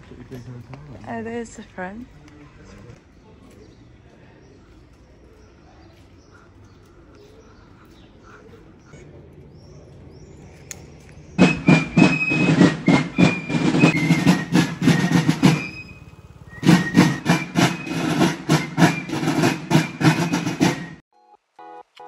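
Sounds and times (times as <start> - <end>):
marching drums: 11.4 - 21.0
high piping melody: 11.4 - 22.0.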